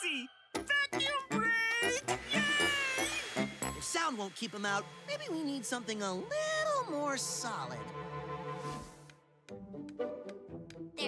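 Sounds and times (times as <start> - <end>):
background music with steady beat: 8.0 - 11.0.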